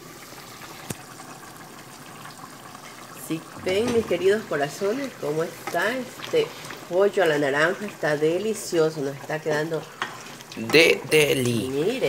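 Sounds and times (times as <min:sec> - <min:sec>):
pot boiling with bubbling hiss: 0:00.0 - 0:12.0.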